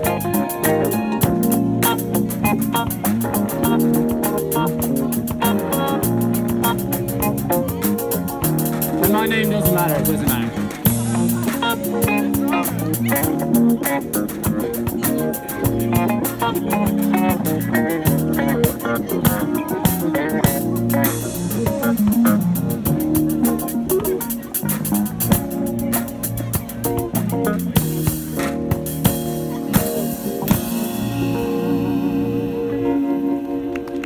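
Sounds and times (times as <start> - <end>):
bass guitar: 0.0 - 34.0
electric guitar: 0.0 - 34.0.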